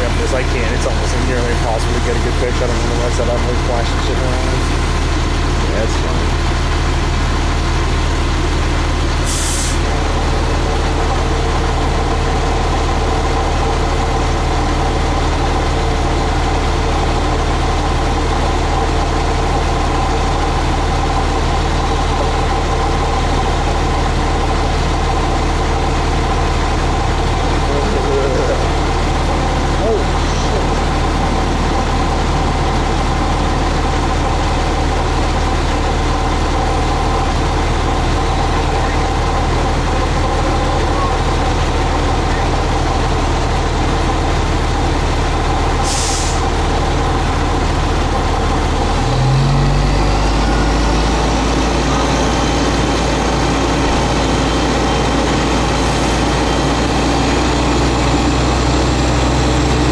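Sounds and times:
truck engine idling: 0:00.0 - 0:59.9.

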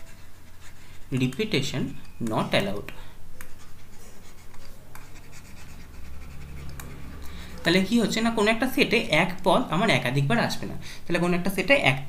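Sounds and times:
stylus scratching on tablet: 0:00.0 - 0:01.7, 0:03.4 - 0:08.4
low steady hum: 0:00.0 - 0:12.0.

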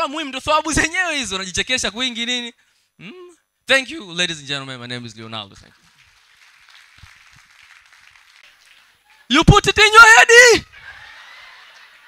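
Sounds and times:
faint audience applause: 0:05.7 - 0:09.3.

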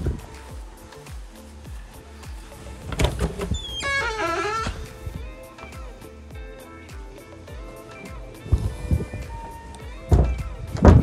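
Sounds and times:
door hinges creaking: 0:02.6 - 0:06.0
door latch clicking: 0:02.8 - 0:05.7.

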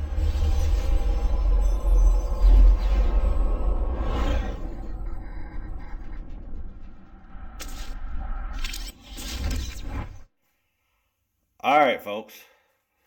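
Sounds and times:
deep bass rumble: 0:00.0 - 0:08.7.

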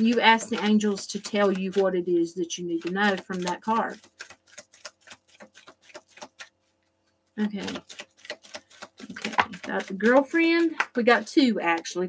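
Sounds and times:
cards being shuffled: 0:00.0 - 0:02.0, 0:02.6 - 0:12.0.

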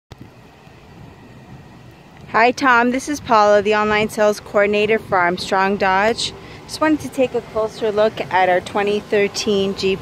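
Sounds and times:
low outdoor rumble: 0:00.1 - 0:10.0.

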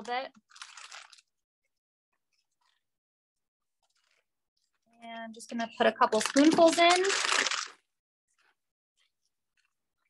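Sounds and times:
plastic piping bag crinkling: 0:00.0 - 0:01.4, 0:03.8 - 0:04.2, 0:05.8 - 0:09.8.

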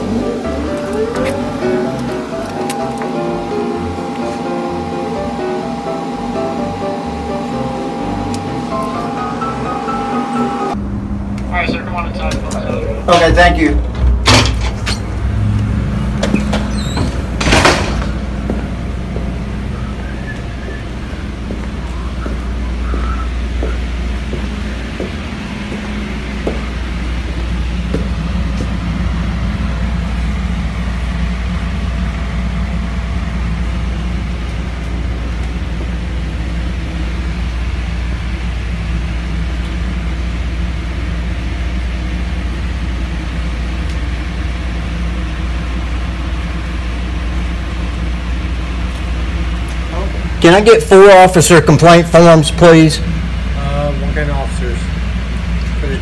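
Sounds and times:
low rumble and hum: 0:00.0 - 0:56.0.

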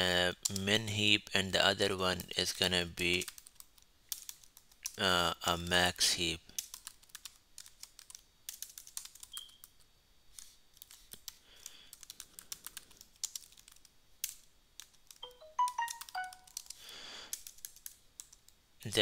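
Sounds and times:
keyboard typing: 0:03.1 - 0:05.0, 0:06.6 - 0:09.8, 0:10.4 - 0:18.6
short electronic tones: 0:15.2 - 0:16.5.

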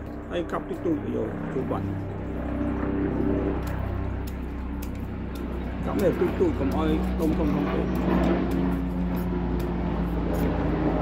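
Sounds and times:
low motor hum: 0:00.0 - 0:11.0
knife slicing watermelon rind: 0:03.7 - 0:11.0.

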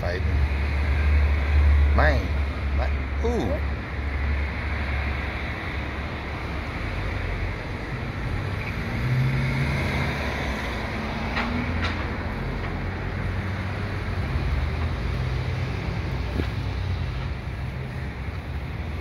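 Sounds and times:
low engine rumble: 0:09.8 - 0:19.0.

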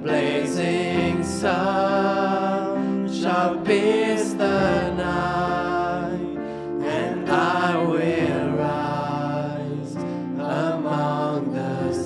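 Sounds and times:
worship song with accompaniment: 0:00.0 - 0:12.0.

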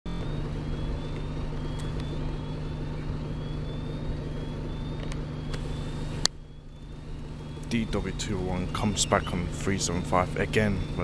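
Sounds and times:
faint high whine: 0:00.1 - 0:11.0
light clicks: 0:01.1 - 0:02.2, 0:04.9 - 0:07.8
bus engine idling: 0:07.0 - 0:11.0.

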